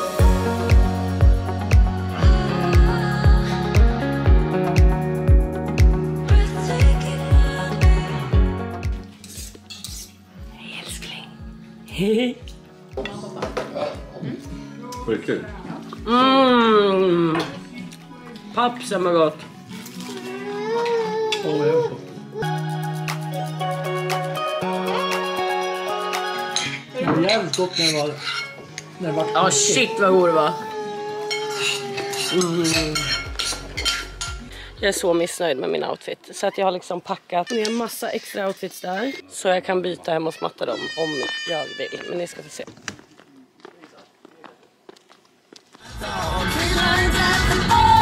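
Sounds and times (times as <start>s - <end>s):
faint background music: 0.0s - 48.0s
low thumping beat: 0.2s - 9.0s
cutlery scraping on a plate: 9.1s - 10.2s, 26.6s - 28.9s, 31.3s - 34.4s
metal spoon clinking dish: 9.2s - 10.2s, 27.3s - 28.9s, 31.3s - 34.4s.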